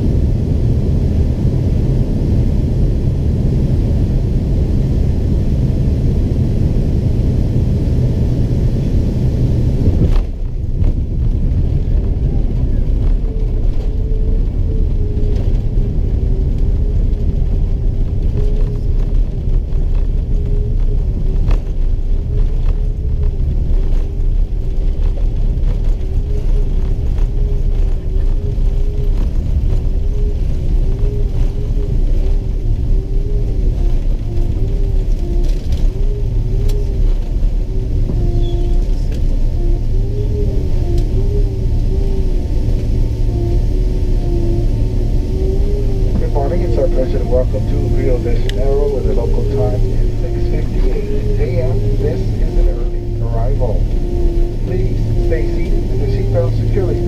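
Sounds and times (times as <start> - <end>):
faint wavering hum: 0.0 - 57.0
jet engine and airflow rumble: 0.0 - 57.0.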